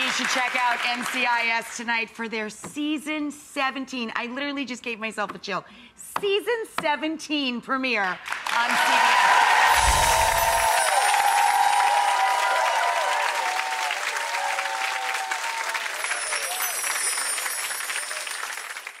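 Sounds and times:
audience applauding: 8.2s - 19.0s.

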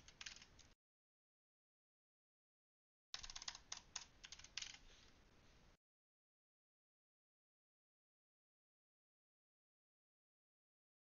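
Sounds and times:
computer keyboard typing: 0.0s - 0.8s, 3.2s - 4.8s.

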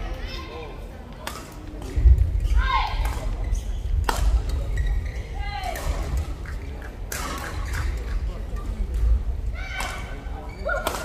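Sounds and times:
rackets striking shuttlecock: 1.2s - 2.0s, 4.0s - 4.6s, 10.8s - 11.0s.

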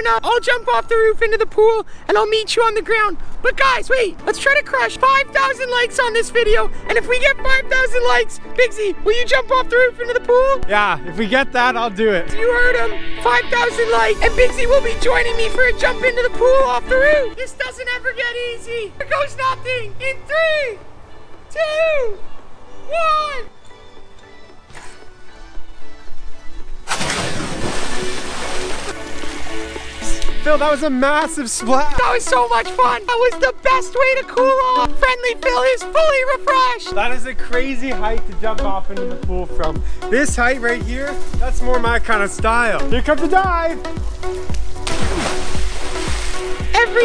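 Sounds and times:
background music: 0.0s - 47.0s
massive splash into pool: 26.9s - 29.9s, 44.8s - 46.6s
water washing: 26.9s - 33.3s, 43.9s - 47.0s.

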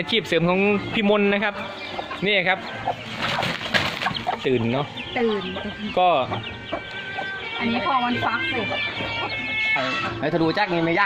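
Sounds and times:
chickens clucking and calling: 0.0s - 11.0s.

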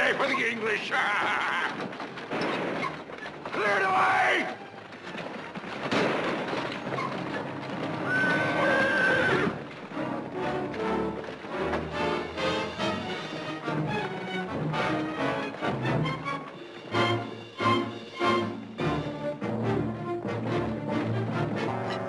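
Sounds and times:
horse-drawn wagon clattering: 0.0s - 19.6s
music: 0.0s - 22.0s
horse whinnying: 7.9s - 9.7s.

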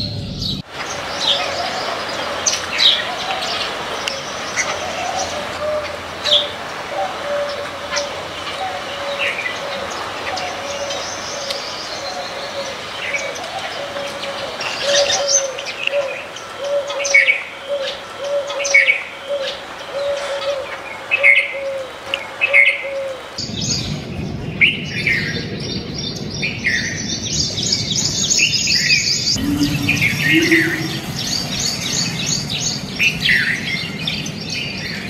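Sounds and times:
low rumble: 0.0s - 0.6s, 29.3s - 32.4s
small birds chirping: 0.0s - 35.0s
low hollow notes: 29.3s - 31.9s.

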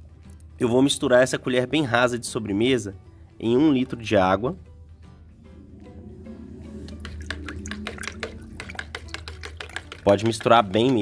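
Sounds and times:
water sloshing: 5.4s - 10.1s
spoon scraping plastic jug: 6.9s - 11.0s.

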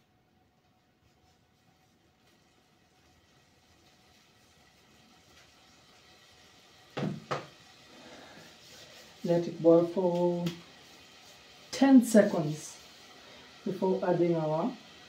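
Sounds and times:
faint hiss: 0.0s - 15.0s
sharp knocks in kitchen: 7.0s - 7.6s.

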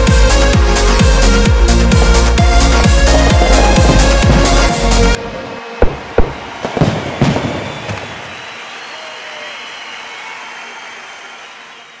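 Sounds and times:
fireworks hissing: 1.6s - 5.2s, 5.8s - 9.1s
fireworks bangs: 1.6s - 9.5s.

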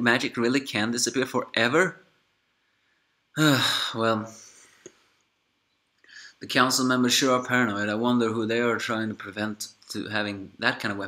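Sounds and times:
man speaking: 0.0s - 2.1s, 3.4s - 4.6s, 6.2s - 11.0s
man sighing: 3.4s - 4.9s.

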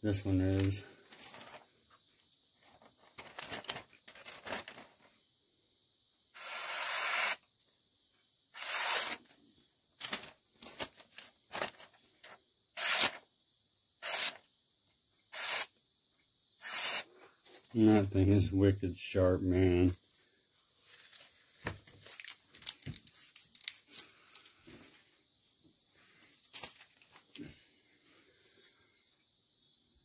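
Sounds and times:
serrated blade slicing paper: 6.4s - 7.4s, 8.6s - 9.3s, 12.8s - 13.2s, 14.0s - 14.4s, 15.4s - 15.7s, 16.6s - 17.1s.

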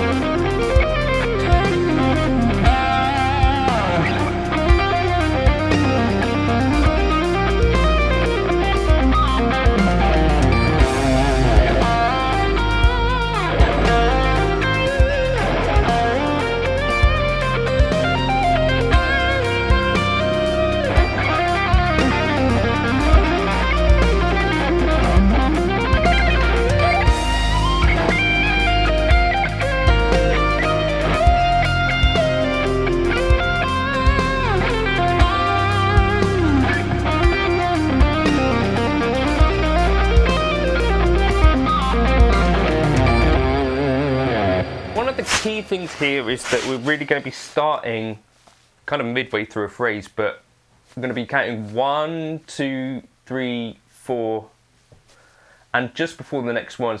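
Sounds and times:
backing track with bass and beat: 0.0s - 44.2s
electric guitar lead: 0.0s - 45.4s.

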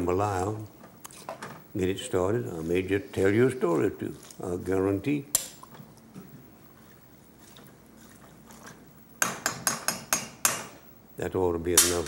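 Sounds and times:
faint wet sloshing: 2.4s - 9.0s
spoon knocking against metal pot: 9.2s - 10.7s.

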